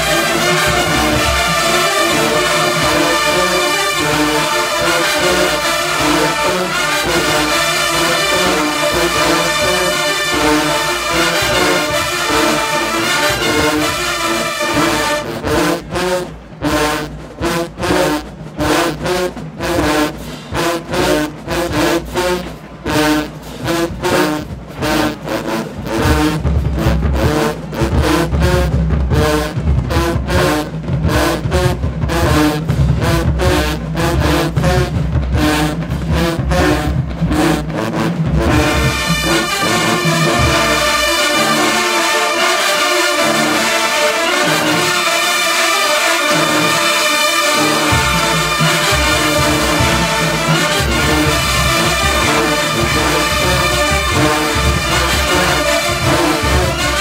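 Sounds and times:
marching band playing: 0.0 - 57.0.

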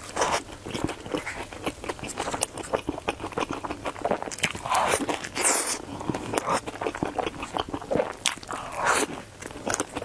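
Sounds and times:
crunchy chewing of fried food: 0.0 - 10.0.

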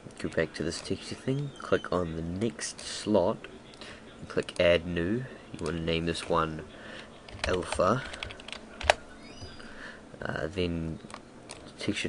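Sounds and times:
computer keyboard typing: 7.3 - 9.0.

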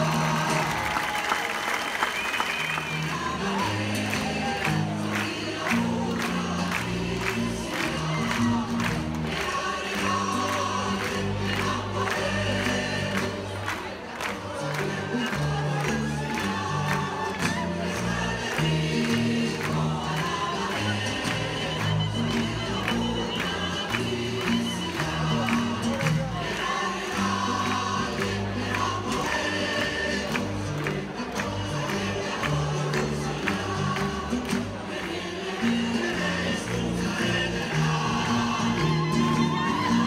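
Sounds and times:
choir singing with accompaniment: 2.9 - 40.0.

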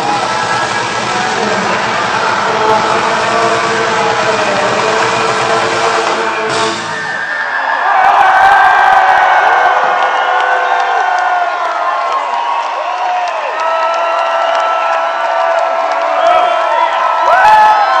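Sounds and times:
live punk band playing: 0.0 - 7.2
crowd cheering and whooping: 0.0 - 18.0.

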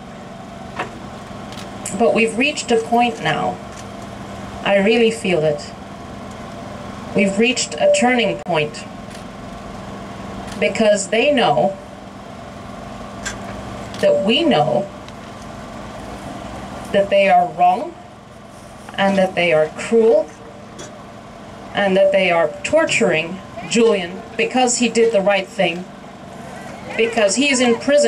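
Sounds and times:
low mechanical hum: 0.0 - 28.0
low outdoor rumble: 0.0 - 28.0.

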